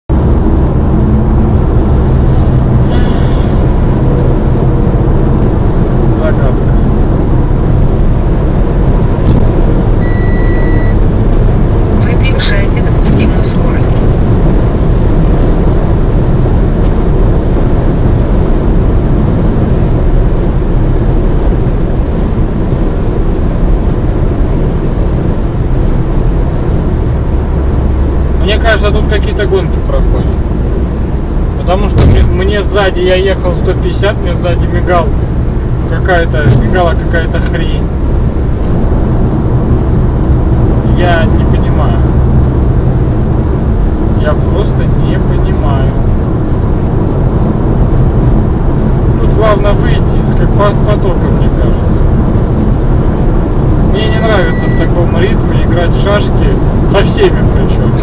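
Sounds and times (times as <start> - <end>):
car road and engine rumble: 0.1 - 58.0
short electronic beep: 10.0 - 11.0, 54.0 - 55.1.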